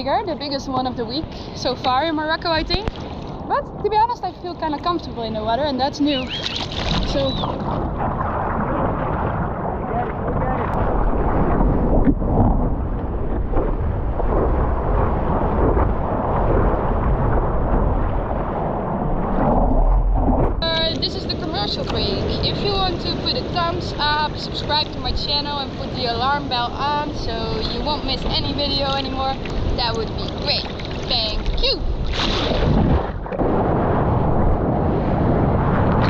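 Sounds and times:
woman talking: 0:00.0 - 0:02.9, 0:03.5 - 0:06.4, 0:07.0 - 0:07.6, 0:20.6 - 0:31.9
water rushing and splashing: 0:00.0 - 0:36.0
wind buffeting: 0:00.0 - 0:36.0.

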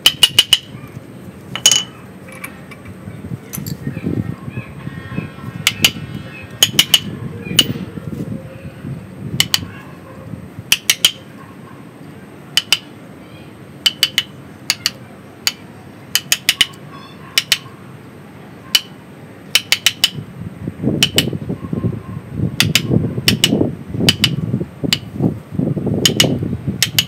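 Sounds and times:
chisel tapping with metallic ring: 0:00.1 - 0:00.7, 0:01.6 - 0:02.5, 0:10.7 - 0:11.2, 0:12.6 - 0:12.9, 0:13.8 - 0:15.6, 0:16.2 - 0:16.8, 0:17.4 - 0:17.6, 0:19.6 - 0:20.2, 0:21.0 - 0:21.3, 0:26.0 - 0:27.0.

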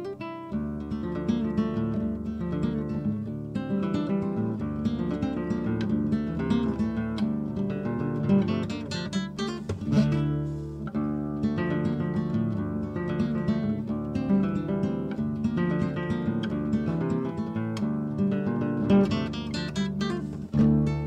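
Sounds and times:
acoustic guitar plucked and strummed: 0:00.0 - 0:21.0.

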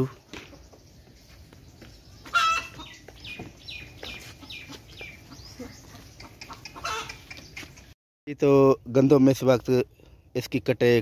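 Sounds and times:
chickens clucking: 0:02.2 - 0:08.0
loud hen call: 0:02.3 - 0:02.9, 0:06.5 - 0:07.2.

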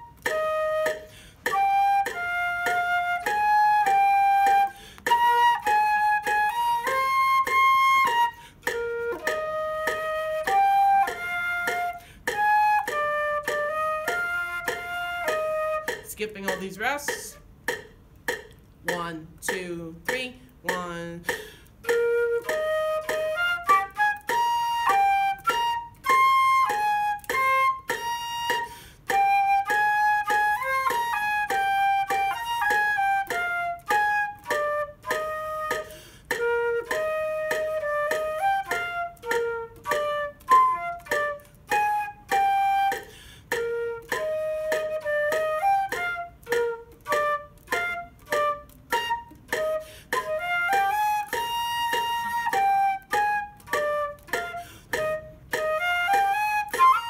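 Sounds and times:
solo flute melody: 0:00.0 - 0:16.1, 0:21.8 - 0:57.0
metronome clicking: 0:00.0 - 0:57.0.

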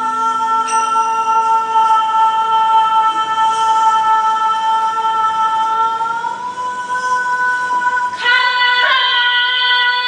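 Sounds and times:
finger cymbals ringing: 0:00.0 - 0:06.5
woman singing a long note: 0:00.0 - 0:10.0.

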